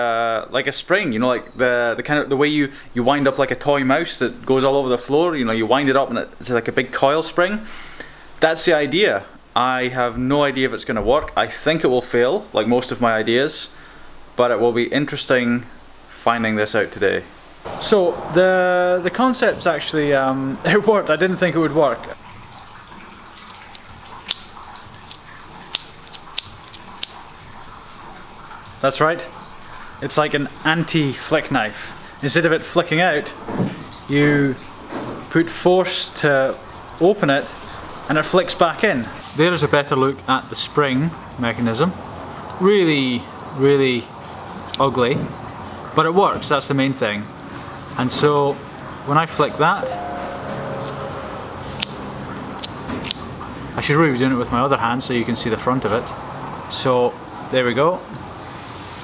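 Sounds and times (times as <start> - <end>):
pocketknife clicking shut: 25.1 - 27.2.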